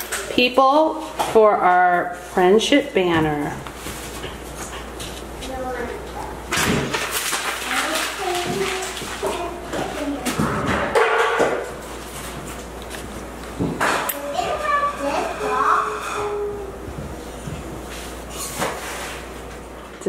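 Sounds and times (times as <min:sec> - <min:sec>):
young children chattering: 0:07.7 - 0:10.7, 0:14.2 - 0:16.8.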